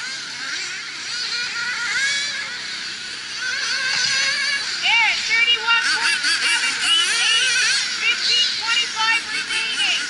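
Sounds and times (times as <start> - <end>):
rc car engines whining: 0.0 - 10.0.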